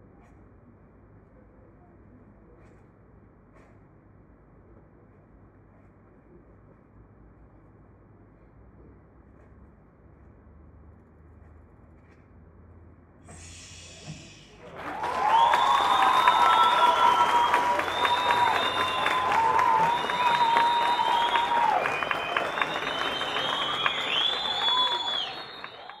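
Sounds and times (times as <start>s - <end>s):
shrill whistles: 13.3s - 26.0s
audience cheering: 14.3s - 26.0s
audience applauding: 14.5s - 26.0s.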